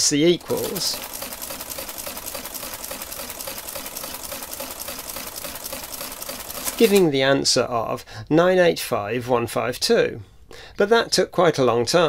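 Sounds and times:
adding machine clattering: 0:00.3 - 0:07.1.

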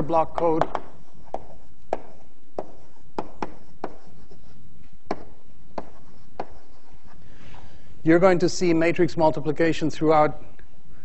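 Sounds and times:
chalk tapping and scraping blackboard: 0:00.2 - 0:07.7.

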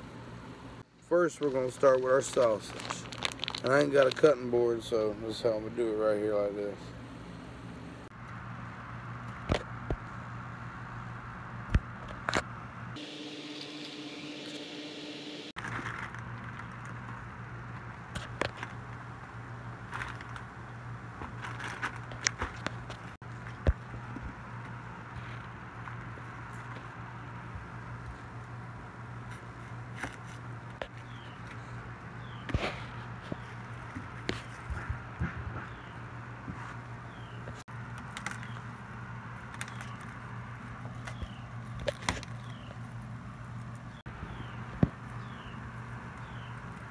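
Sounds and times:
steady low hum: 0:03.8 - 0:46.9.

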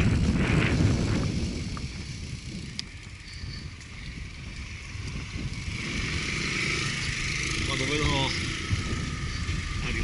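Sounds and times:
road and tyre hiss: 0:00.0 - 0:10.0
wind buffeting microphone: 0:00.0 - 0:10.0.

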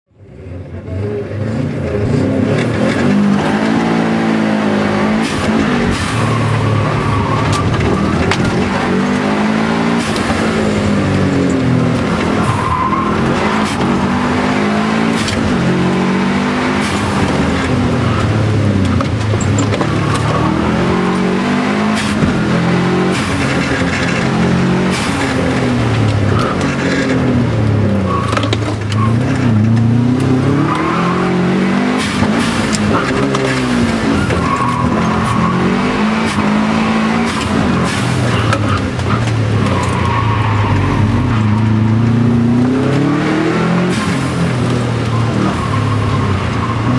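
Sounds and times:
car engine revving: 0:00.2 - 0:46.9.

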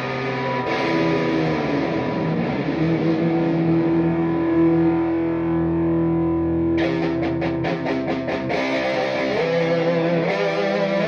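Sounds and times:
distorted electric guitar note: 0:00.0 - 0:11.0
quick picked guitar notes: 0:06.8 - 0:11.0.

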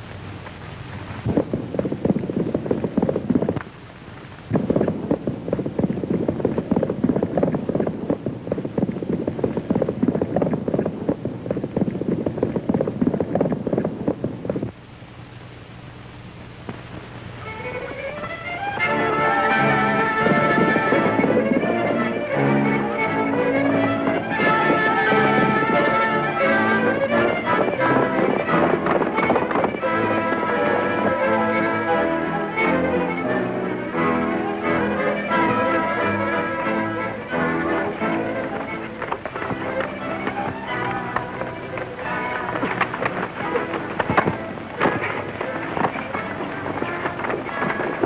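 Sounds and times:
horses galloping: 0:00.0 - 0:14.9, 0:16.6 - 0:48.0
film score music: 0:17.4 - 0:48.0.

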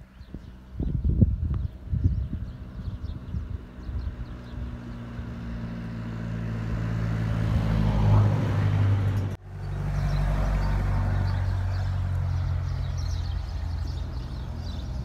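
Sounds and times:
vehicle engine humming: 0:00.0 - 0:15.0.

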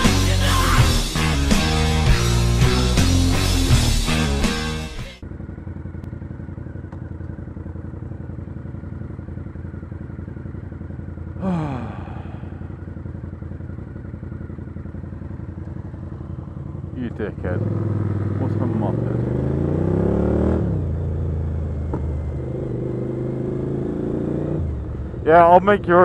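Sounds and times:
motorcycle engines idling: 0:00.0 - 0:19.7, 0:20.4 - 0:26.0
motorcycle throttle blip: 0:06.0 - 0:07.7, 0:15.4 - 0:15.9, 0:21.8 - 0:22.2.

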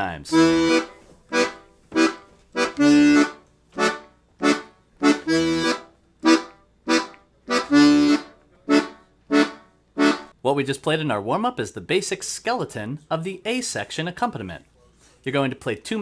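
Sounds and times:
accordion bass chord stabs: 0:00.3 - 0:10.3.

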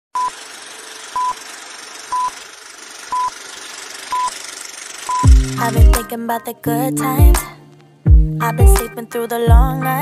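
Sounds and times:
short high beeps: 0:05.1 - 0:05.4.

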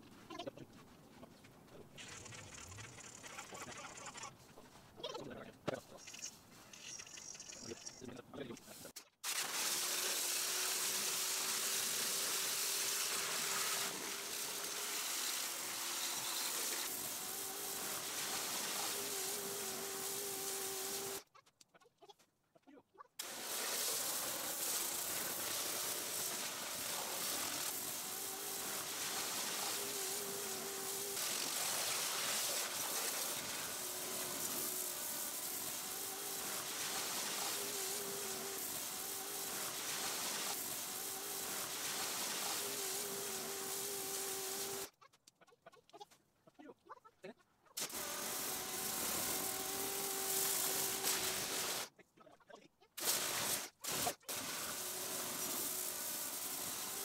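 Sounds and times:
pressure washer water spray hiss: 0:08.6 - 0:21.2, 0:23.2 - 0:44.9, 0:47.8 - 0:51.9, 0:53.0 - 0:57.0.

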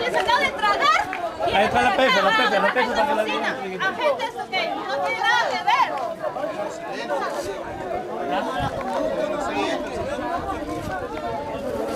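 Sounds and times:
babble of overlapping voices: 0:00.0 - 0:11.9.

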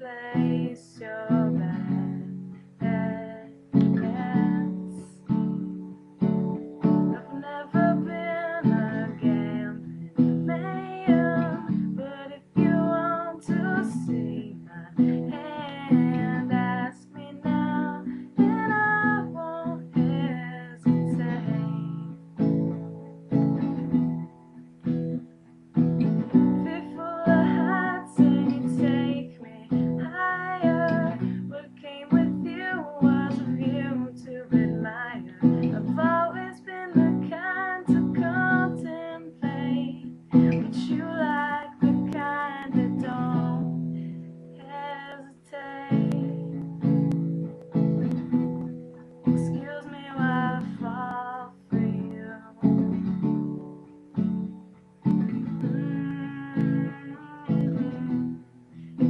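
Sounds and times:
woman singing: 0:00.0 - 0:22.9, 0:26.0 - 0:59.0
strummed acoustic guitar: 0:00.0 - 0:59.0.

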